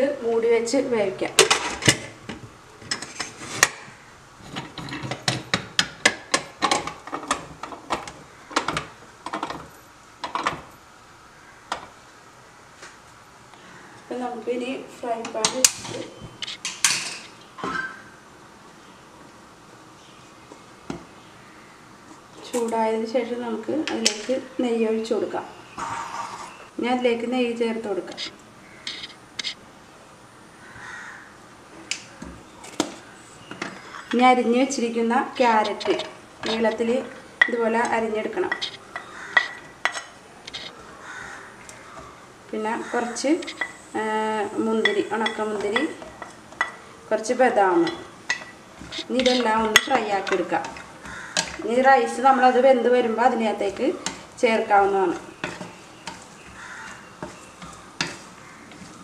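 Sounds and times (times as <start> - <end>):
soft noisy sound: 0.0 - 59.0.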